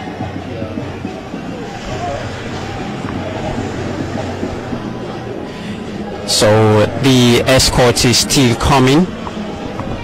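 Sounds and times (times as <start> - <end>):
vehicles driving past: 0.0 - 10.0.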